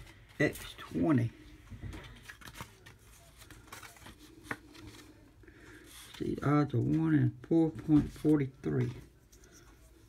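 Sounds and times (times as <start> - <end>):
paper ticket rustling: 1.9 - 9.8.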